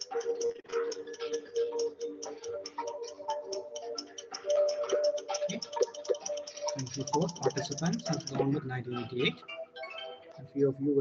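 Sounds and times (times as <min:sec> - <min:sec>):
fast ticking beat: 0:00.0 - 0:09.4
game show countdown music: 0:00.0 - 0:11.0.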